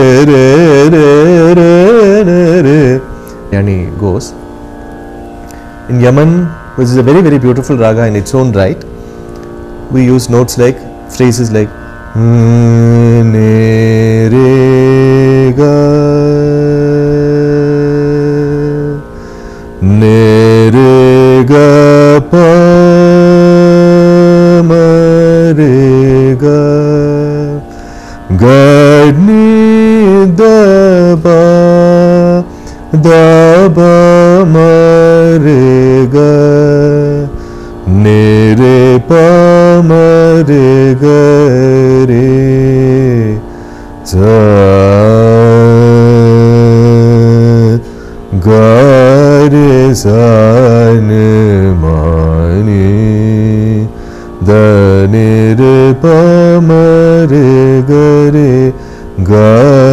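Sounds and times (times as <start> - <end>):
man singing long held notes: 0.0 - 4.4, 5.5 - 59.9.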